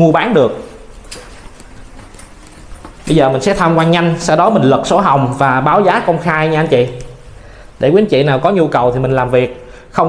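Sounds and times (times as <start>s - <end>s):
footsteps on stone stairs: 1.0s - 3.2s.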